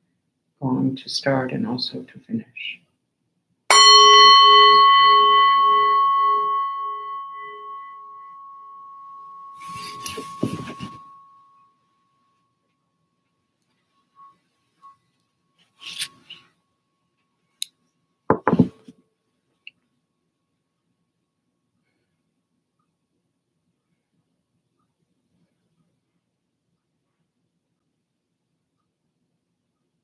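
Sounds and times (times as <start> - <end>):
singing bowl ringing: 3.7 - 11.6, 14.0 - 15.0
striker knock: 18.3 - 18.8.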